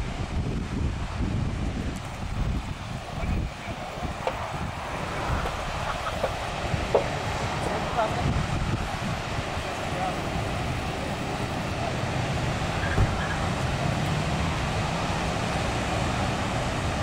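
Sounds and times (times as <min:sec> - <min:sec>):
faint voices: 0:02.9 - 0:13.6.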